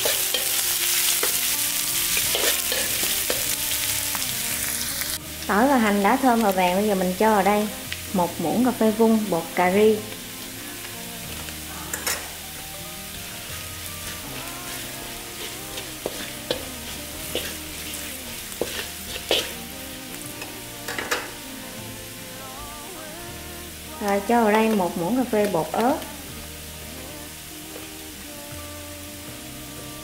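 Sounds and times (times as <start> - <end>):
garlic sizzling in hot oil: 0.0 - 30.0
spatula scraping metal pan: 14.0 - 19.7.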